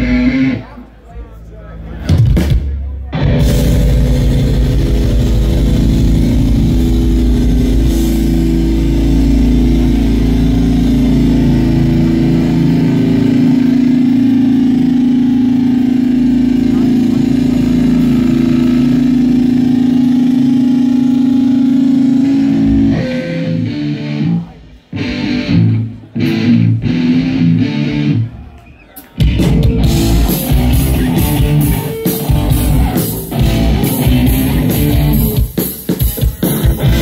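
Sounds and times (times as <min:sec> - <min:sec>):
distorted guitars holding low chord: 0:00.0 - 0:28.5, 0:29.2 - 0:37.0.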